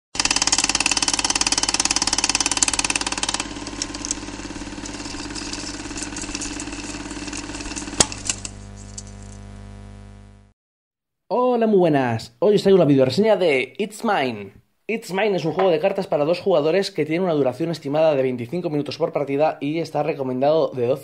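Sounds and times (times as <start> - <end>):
engine running with fast pulse: 0.2 - 10.5.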